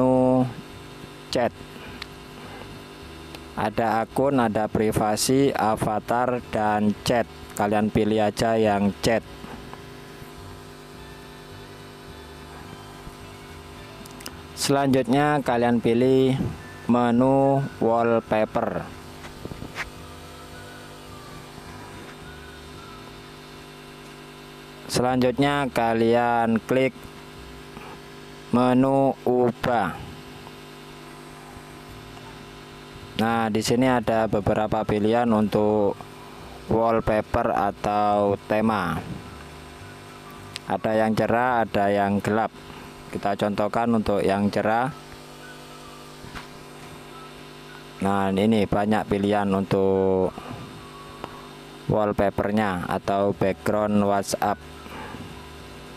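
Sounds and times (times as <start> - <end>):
low electrical hum: 0.0 - 55.9.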